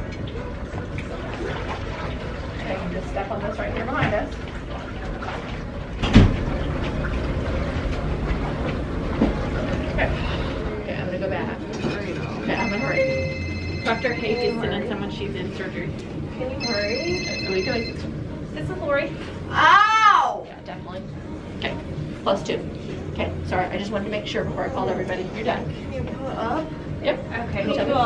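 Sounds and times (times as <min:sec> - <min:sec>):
thump: 0:06.0 - 0:06.4
electronic ringing tone: 0:12.4 - 0:14.8, 0:16.6 - 0:18.2.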